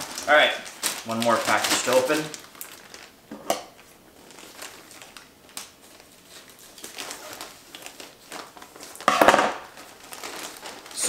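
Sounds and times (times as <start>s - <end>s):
packaging crinkling and rustling: 0.0s - 11.0s
small crackles: 0.0s - 11.0s.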